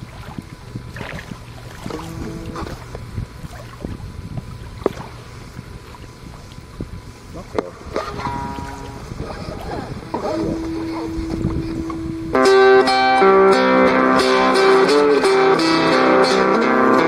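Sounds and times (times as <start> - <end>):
wind buffeting microphone: 0.0 - 12.8
short pitched guitar notes: 1.8 - 2.9, 7.5 - 17.0.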